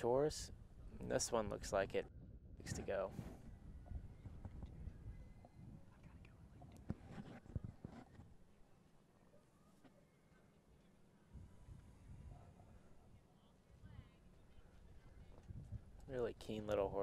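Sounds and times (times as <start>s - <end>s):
faint low outdoor rumble: 0.0s - 17.0s.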